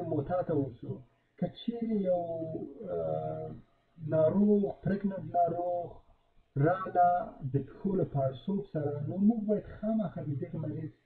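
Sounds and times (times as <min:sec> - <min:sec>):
man saying uhh: 0:01.8 - 0:05.9, 0:06.6 - 0:10.9.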